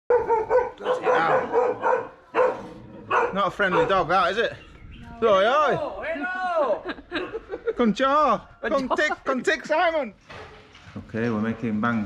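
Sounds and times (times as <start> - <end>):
dog barking: 0.1 - 4.3.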